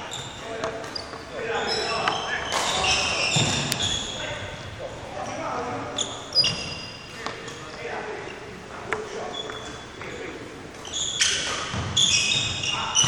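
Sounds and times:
shoes squeaking on court floor: 0.0 - 13.0.

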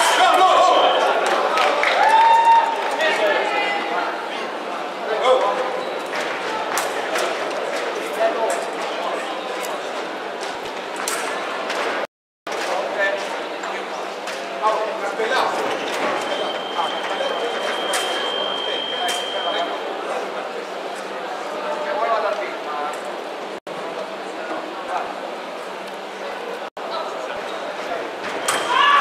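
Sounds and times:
murmur of many people talking: 2.7 - 29.0.

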